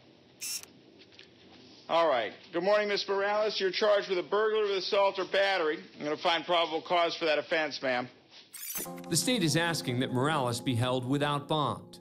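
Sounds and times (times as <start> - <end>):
man speaking: 9.0 - 12.0.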